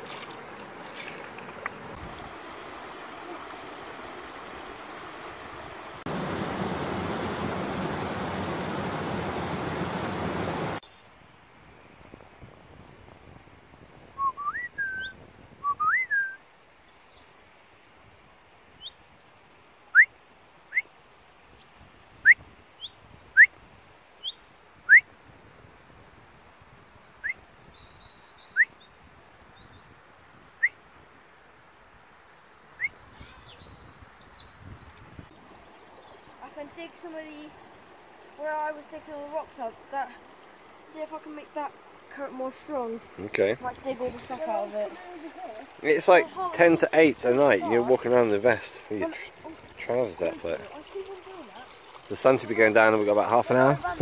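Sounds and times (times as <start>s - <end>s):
rushing stream water: 0.0s - 12.7s, 15.0s - 54.0s
songbird calling: 14.2s - 17.4s, 21.6s - 23.5s, 24.2s - 25.1s, 27.1s - 30.8s, 32.7s - 39.7s, 40.8s - 52.8s.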